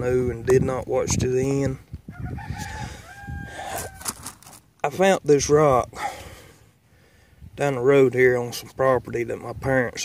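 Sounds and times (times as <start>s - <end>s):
rooster crowing: 2.1s - 4.2s.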